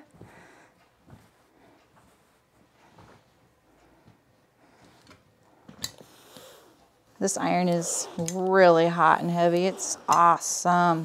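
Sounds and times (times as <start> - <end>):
iron click: 7.3 - 11.0.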